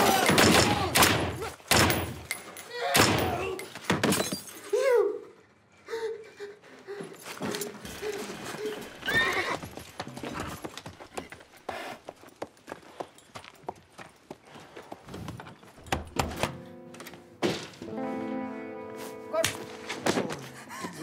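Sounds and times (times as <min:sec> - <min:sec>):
horse hooves clopping: 0:07.1 - 0:16.2
horse whinnying: 0:08.8 - 0:09.7
music: 0:16.2 - 0:21.0.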